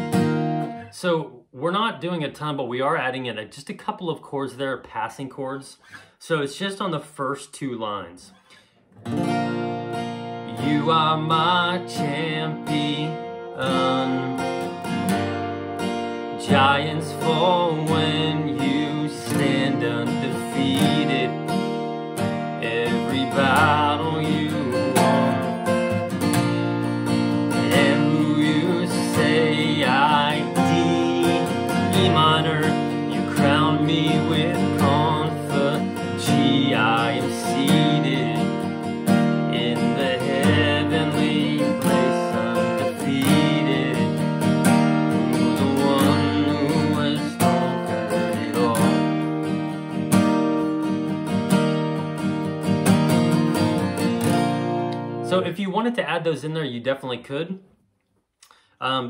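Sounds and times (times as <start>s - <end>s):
acoustic guitar strumming chords: 0.0s - 2.2s, 8.0s - 55.6s
man singing: 10.4s - 14.8s, 16.3s - 21.6s, 22.5s - 26.2s, 27.4s - 44.5s, 45.2s - 49.3s.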